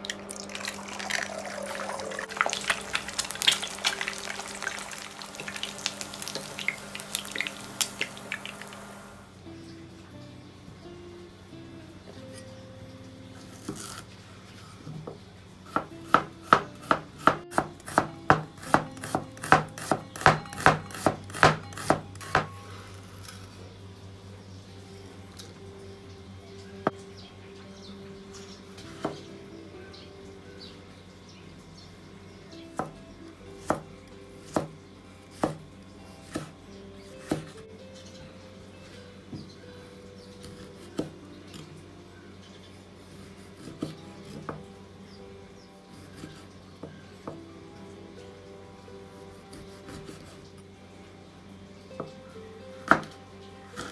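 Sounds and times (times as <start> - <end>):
knife chopping on cutting board: 15.8 - 22.5.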